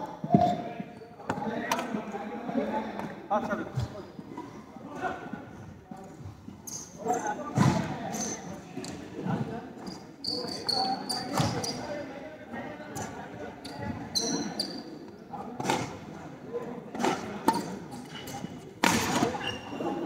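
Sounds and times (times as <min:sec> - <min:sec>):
shoes squeaking on floor: 0:06.5 - 0:09.0, 0:09.8 - 0:11.9, 0:13.0 - 0:15.0, 0:18.0 - 0:20.0
racket hitting shuttlecock: 0:18.8 - 0:19.3.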